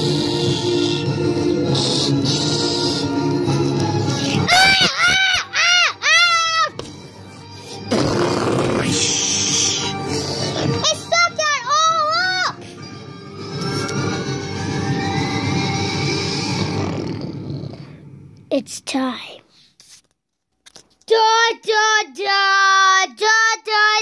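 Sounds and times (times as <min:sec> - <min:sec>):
background music: 0:00.0 - 0:19.1
monster screeches: 0:07.9 - 0:10.8.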